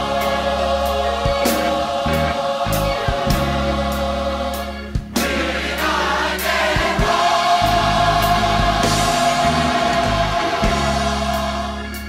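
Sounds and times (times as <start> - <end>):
gospel choir singing: 0.0 - 12.0
instrumental backing: 0.0 - 12.0.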